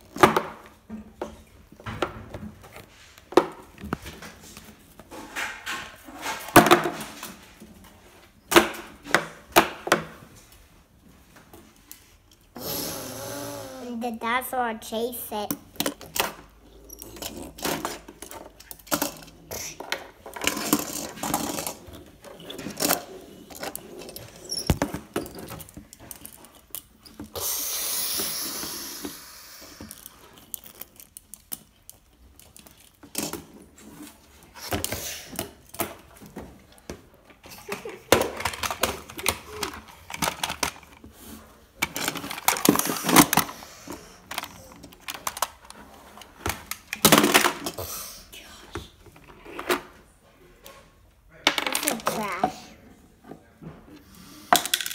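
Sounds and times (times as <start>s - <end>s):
plastic toys clattering on wood: 0.0s - 7.5s, 15.4s - 27.4s, 29.7s - 41.2s, 41.8s - 47.9s, 51.4s - 52.7s, 54.5s - 54.9s.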